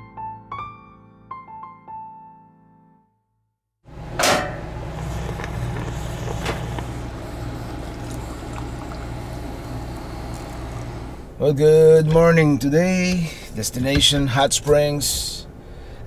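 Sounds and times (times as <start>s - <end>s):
steady low hum: 3.9s - 16.0s
sharp metal clank: 4.2s - 4.7s
coffee pouring into metal pitcher: 5.0s - 11.2s.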